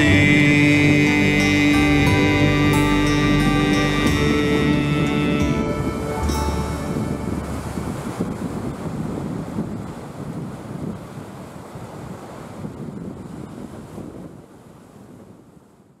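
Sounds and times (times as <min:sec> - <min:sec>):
rush of waves: 0:00.0 - 0:16.0
wind noise: 0:00.0 - 0:16.0.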